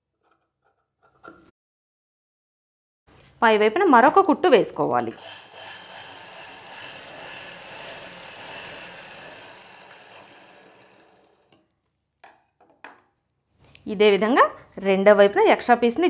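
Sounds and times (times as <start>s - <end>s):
sewing machine stitching: 5.2s - 11.6s.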